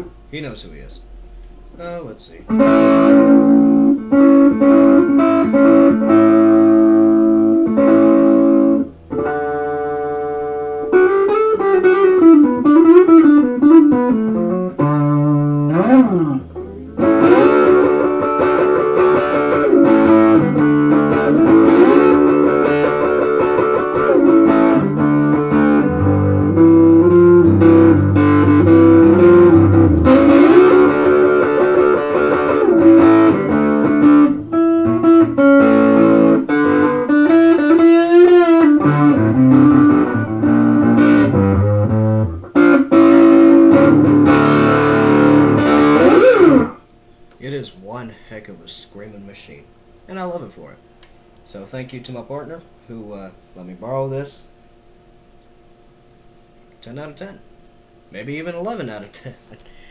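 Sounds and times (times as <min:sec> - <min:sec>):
distorted electric guitar: 0:00.0 - 0:00.3, 0:02.5 - 0:46.8.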